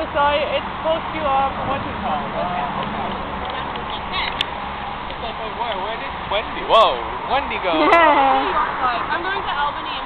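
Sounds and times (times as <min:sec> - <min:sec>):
traffic hiss on wet street: 0:00.0 - 0:10.0.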